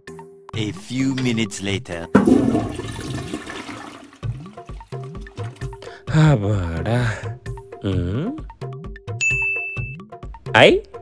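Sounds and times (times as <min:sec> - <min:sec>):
toilet flushing: 0:02.1 - 0:05.8.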